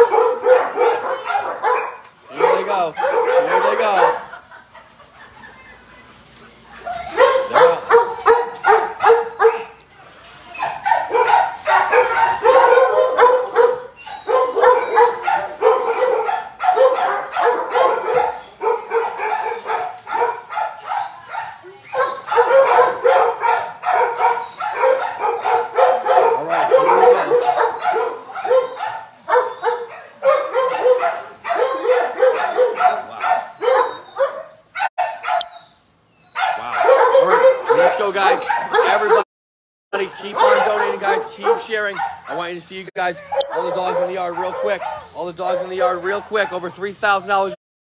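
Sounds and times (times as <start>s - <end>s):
dogs barking: 0.0s - 39.3s, 40.0s - 47.6s.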